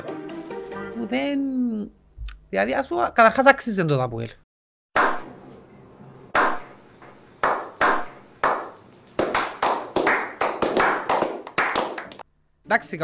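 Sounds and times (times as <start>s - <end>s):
men clapping hands: 6.4s - 6.6s, 7.4s - 12.3s.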